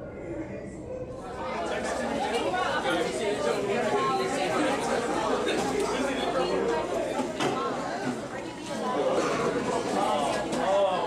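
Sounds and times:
indistinct chatter of many voices: 0.0 - 11.0.

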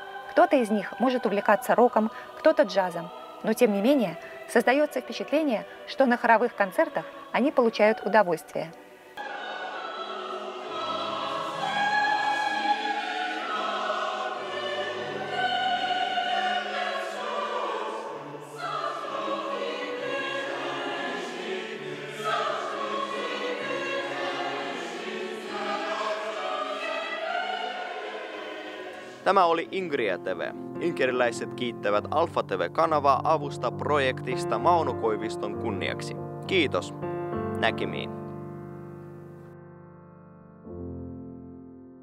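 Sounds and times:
mixed choir singing: 0.0 - 29.5.

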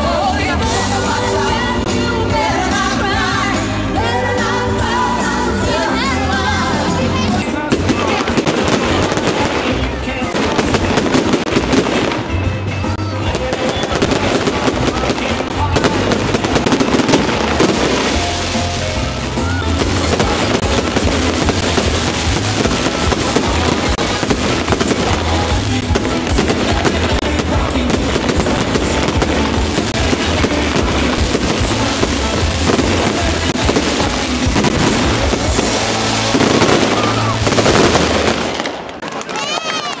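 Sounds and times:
fireworks crackling and banging: 0.0 - 40.0.

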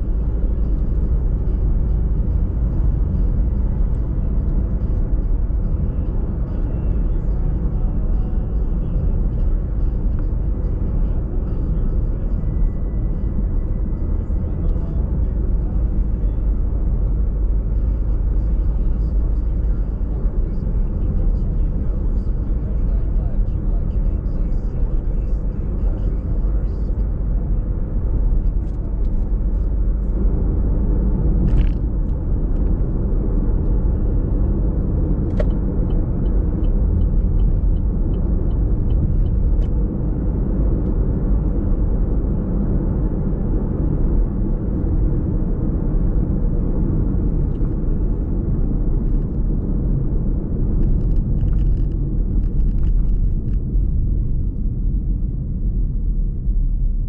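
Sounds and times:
car tyres and engine rumble: 0.0 - 57.0.

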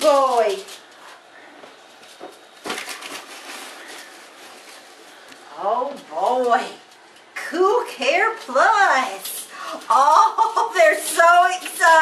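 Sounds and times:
cardboard and packing material rustling: 0.0 - 6.8, 8.2 - 12.0.

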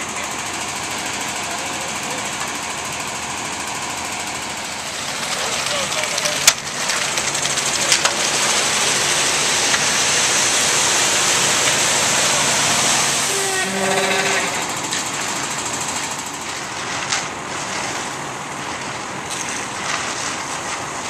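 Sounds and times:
concrete mixer truck running: 0.0 - 21.0
concrete pouring: 0.0 - 21.0.

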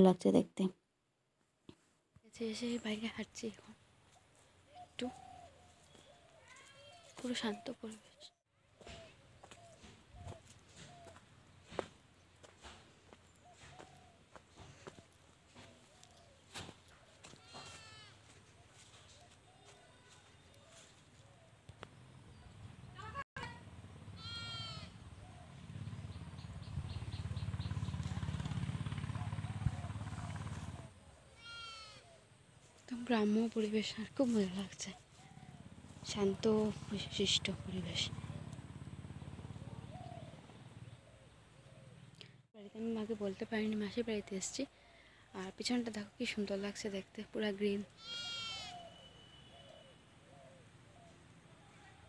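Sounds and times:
high-pitched bleats: 17.4 - 18.2, 24.2 - 24.9, 31.4 - 32.1, 48.0 - 49.0
animal call: 48.0 - 52.0.

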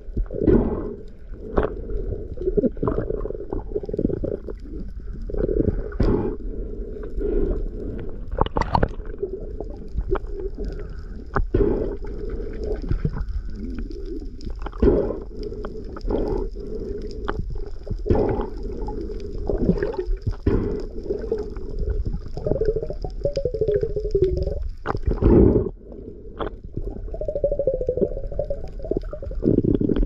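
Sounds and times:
underwater knocks and clicks: 2.4 - 4.6, 8.0 - 16.4, 17.2 - 25.8, 26.4 - 30.0
underwater rush of water: 7.4 - 30.0.

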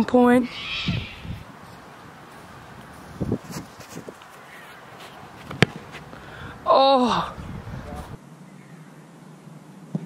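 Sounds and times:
boot kicking a football: 5.4 - 6.1.

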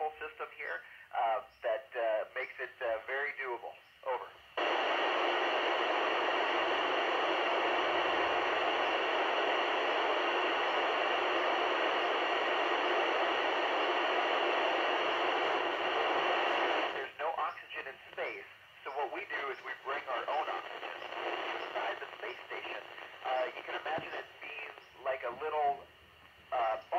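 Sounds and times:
radio static hiss: 0.0 - 26.9.

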